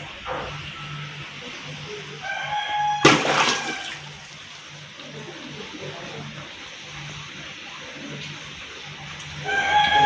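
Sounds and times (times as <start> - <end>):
rooster crowing: 2.2 - 4.1, 9.4 - 10.0
loud water splash: 3.0 - 4.4.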